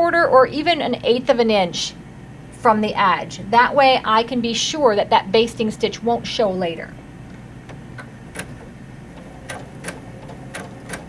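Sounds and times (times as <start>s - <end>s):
sewing machine motor hum: 7.2s - 11.0s
needle mechanism clicks: 7.7s - 11.0s.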